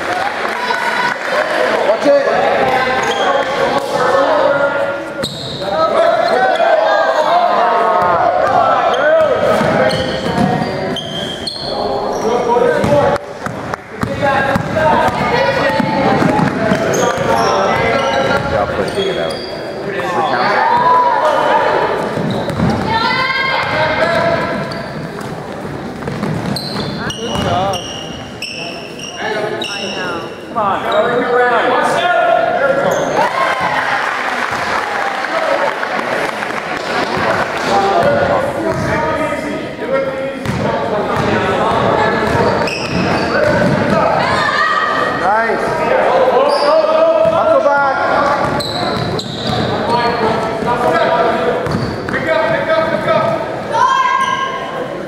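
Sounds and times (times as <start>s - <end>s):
sneakers squeaking: 2.6s - 3.8s, 4.6s - 31.3s, 32.8s - 33.8s, 40.4s - 45.2s, 46.3s - 54.9s
basketball bouncing on wooden floor: 12.8s - 17.3s, 22.2s - 22.9s, 26.0s - 27.6s, 51.6s - 51.9s.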